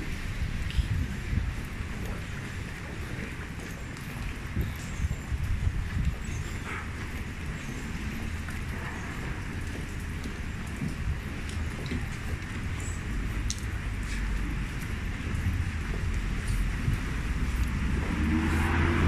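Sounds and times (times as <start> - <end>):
traffic hiss on wet road: 13.2 - 19.0.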